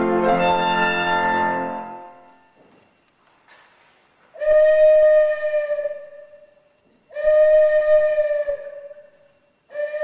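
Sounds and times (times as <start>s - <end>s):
violin long bowed notes: 0.0s - 2.4s.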